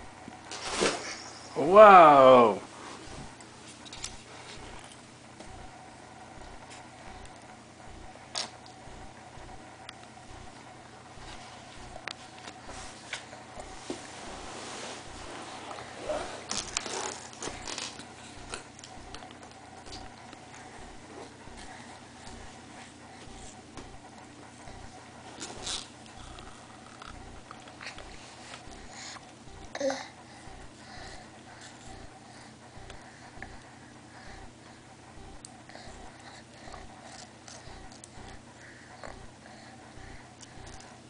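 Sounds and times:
breathing through nose: 30.3s - 34.5s.

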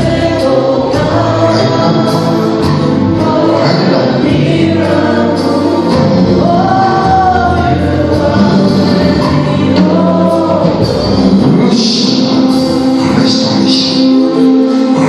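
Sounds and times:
group singing gospel: 0.0s - 15.0s
sustained low accompaniment: 0.0s - 15.0s.

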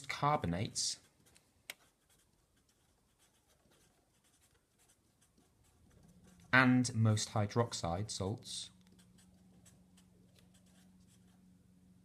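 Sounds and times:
marker scratching on paper: 1.0s - 6.6s, 8.8s - 11.4s.

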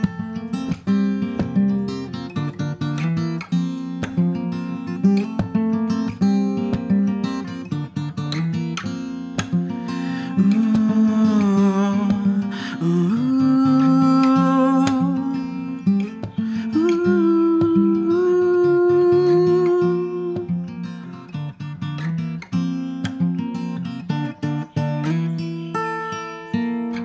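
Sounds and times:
fingerpicked acoustic guitar: 0.0s - 27.0s
man's wordless singing: 10.3s - 15.6s, 16.6s - 20.4s.

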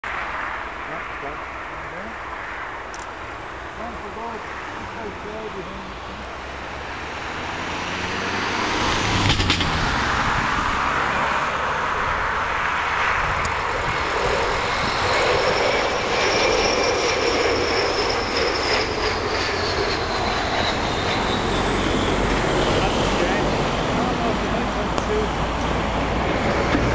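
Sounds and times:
jet engines passing low: 0.0s - 26.9s.

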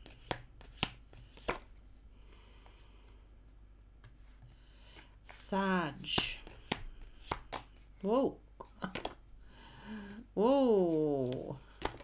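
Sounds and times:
cards being shuffled: 0.0s - 1.9s, 6.0s - 8.1s, 8.8s - 9.2s, 10.9s - 12.0s.

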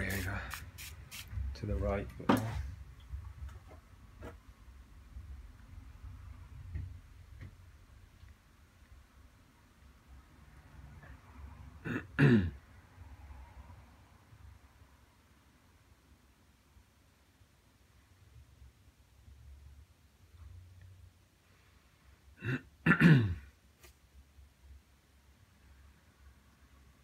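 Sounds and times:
man clearing his throat: 11.8s - 12.6s, 22.4s - 23.5s.

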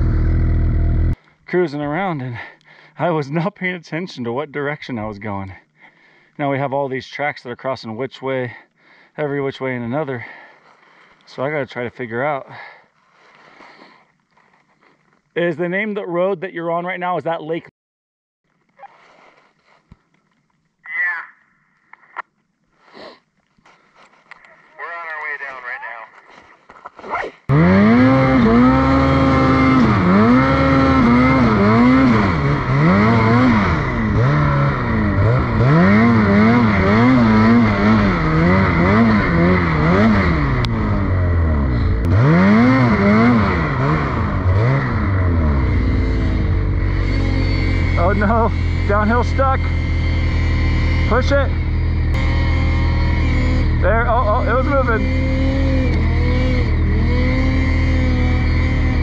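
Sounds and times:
snowmobile engine revving: 0.0s - 1.6s, 27.1s - 59.0s.

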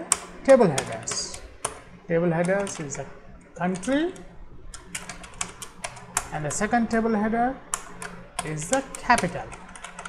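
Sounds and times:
typing on computer keyboard: 0.0s - 10.0s.

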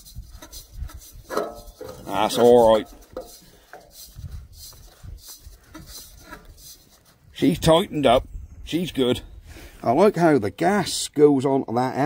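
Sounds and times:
faint scraping rasps on metal: 0.0s - 7.5s.

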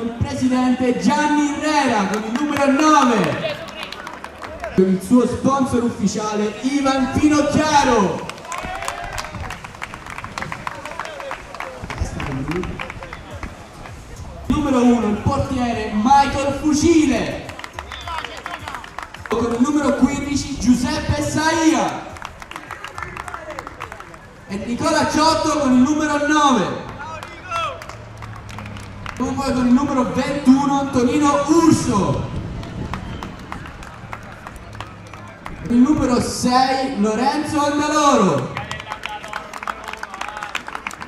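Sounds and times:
small group clapping: 1.9s - 4.8s, 8.0s - 14.0s, 17.3s - 20.2s, 21.4s - 24.4s, 26.8s - 29.8s, 32.1s - 36.1s, 38.2s - 41.0s.

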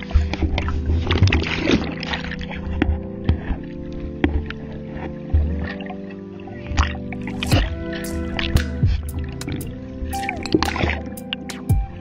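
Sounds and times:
water rushing and bubbling: 0.0s - 12.0s
steady tones: 7.2s - 12.0s
bubbles popping and splashing: 10.2s - 11.8s.

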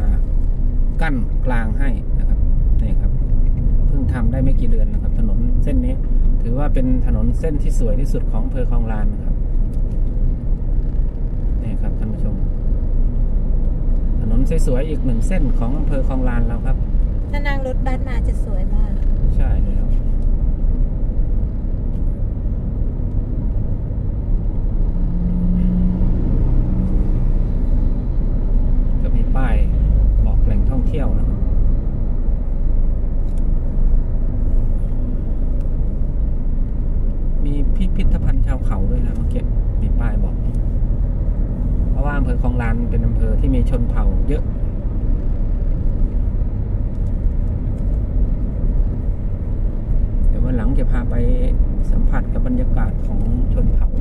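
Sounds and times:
car engine and tyres rumbling: 0.0s - 54.0s.

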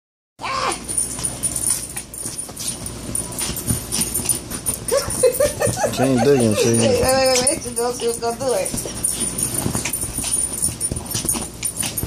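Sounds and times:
dog whining: 0.4s - 1.2s, 3.4s - 12.0s.

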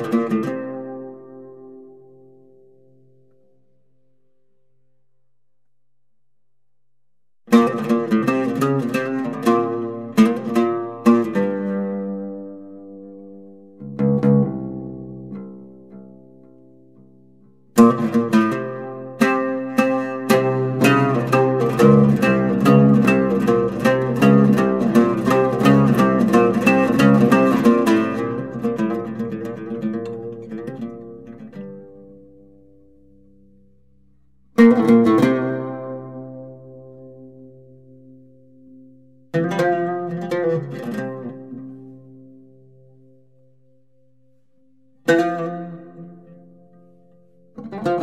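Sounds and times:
plucked string instrument music: 0.0s - 4.6s, 7.5s - 48.0s.

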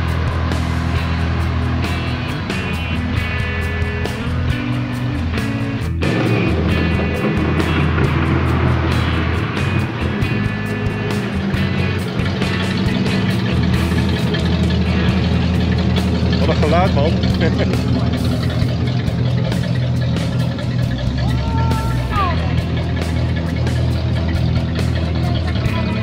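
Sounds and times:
car engines driving past: 0.0s - 26.0s
music: 0.0s - 26.0s.

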